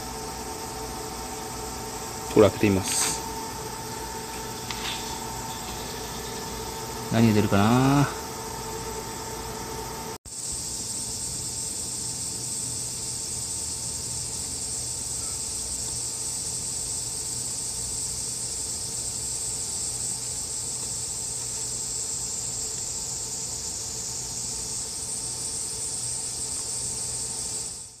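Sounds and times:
low steady hum: 0.0s - 10.2s
insect chorus trilling: 0.0s - 28.0s.

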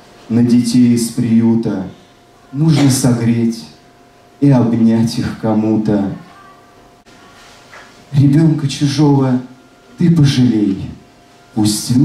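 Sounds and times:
man's amplified voice: 0.3s - 3.8s, 4.4s - 6.3s, 8.1s - 12.0s.

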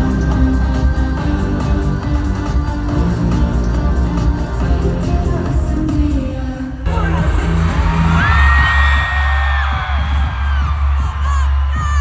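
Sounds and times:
pop song with bass beat: 0.0s - 12.0s.

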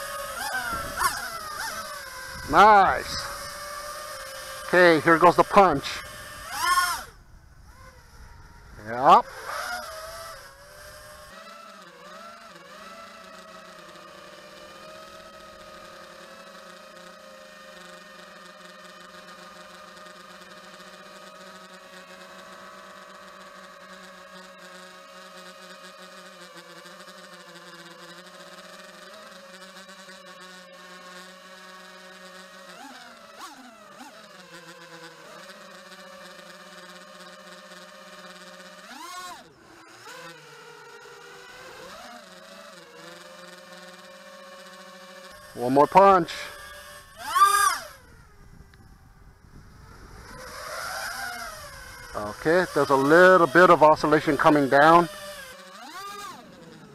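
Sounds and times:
quadcopter motors whining: 0.0s - 56.9s.

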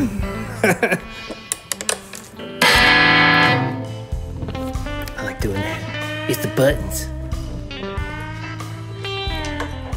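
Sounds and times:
guitar handling clicks: 1.5s - 3.2s
electric guitar plucks: 2.4s - 5.1s
electric guitar chord ringing: 2.5s - 4.1s.

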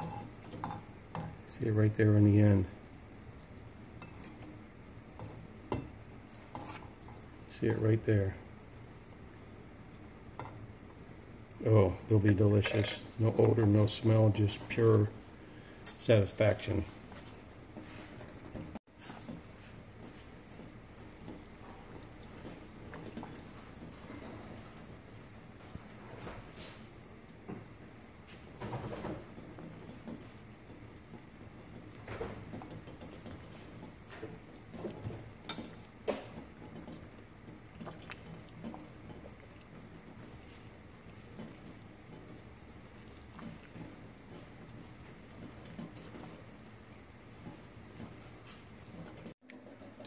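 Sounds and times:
water boiling with bubbling pops: 0.0s - 50.0s.

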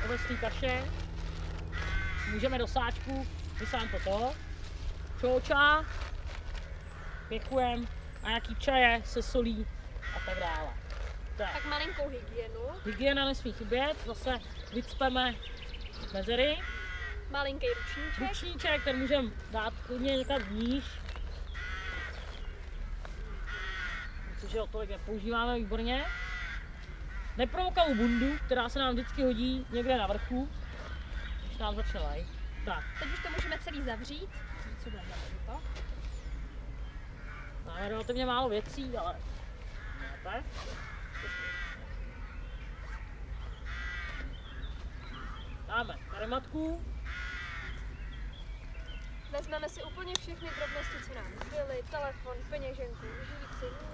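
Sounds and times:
backpack drawstring rustling: 0.0s - 8.4s, 9.4s - 11.9s, 19.0s - 24.0s
bird calling: 0.0s - 53.9s
steady low rumble: 0.0s - 53.9s.

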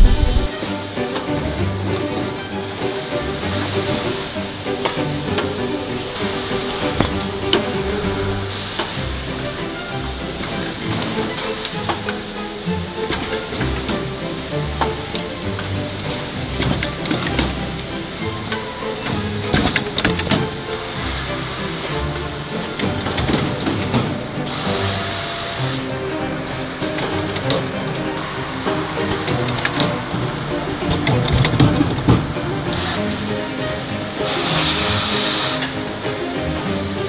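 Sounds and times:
background music: 0.0s - 37.0s
machine clattering and clicking: 14.8s - 20.6s, 22.6s - 24.2s, 26.4s - 33.2s.

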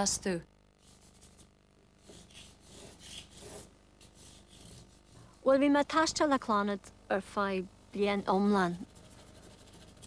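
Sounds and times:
hand rubbing on paper: 0.8s - 5.5s, 8.1s - 10.0s.

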